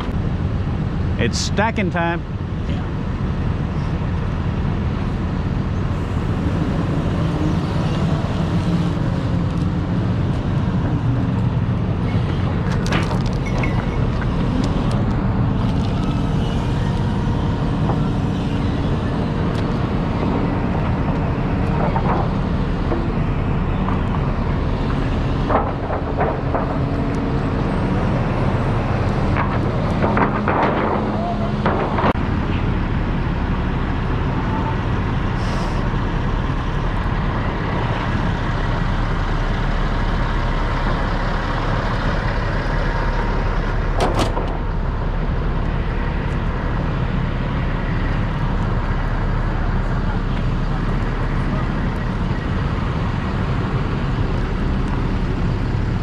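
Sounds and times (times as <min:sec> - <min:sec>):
diesel engines idling: 0:00.0 - 0:56.0
knocks and clanks: 0:25.4 - 0:27.2, 0:29.3 - 0:32.3.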